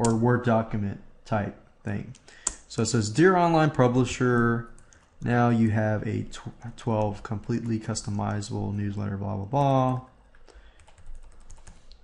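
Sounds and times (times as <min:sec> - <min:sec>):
keyboard typing clicks: 0:09.9 - 0:12.0.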